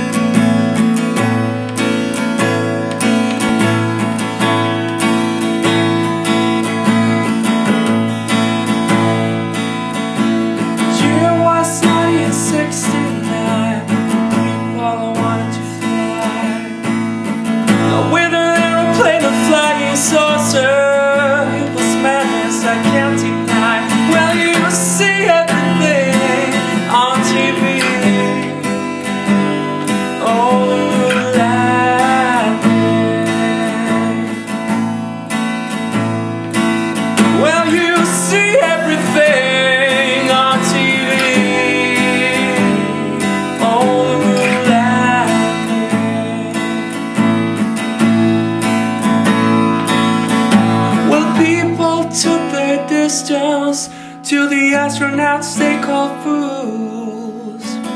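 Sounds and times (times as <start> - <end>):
acoustic guitar strummed: 0.0 - 57.9
man singing: 10.1 - 34.9, 36.9 - 48.2, 50.4 - 57.9.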